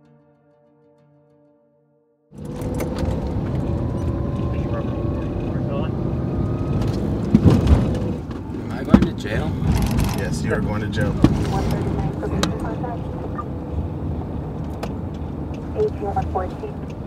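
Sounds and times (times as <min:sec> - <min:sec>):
car engine and road noise: 0:02.3 - 0:17.0
sharp knocks: 0:06.8 - 0:10.2.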